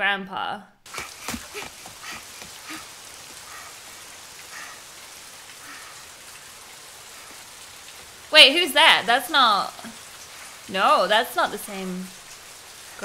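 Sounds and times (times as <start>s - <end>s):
steady rain falling: 0.8s - 13.0s.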